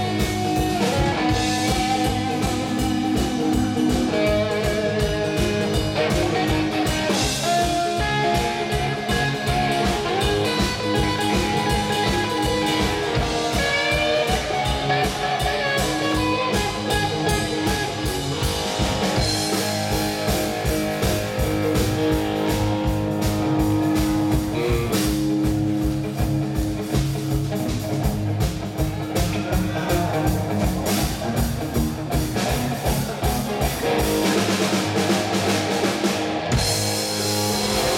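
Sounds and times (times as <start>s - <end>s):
bass guitar: 0.0s - 37.9s
drum kit steady beat: 0.0s - 37.9s
electric guitar: 0.0s - 37.9s.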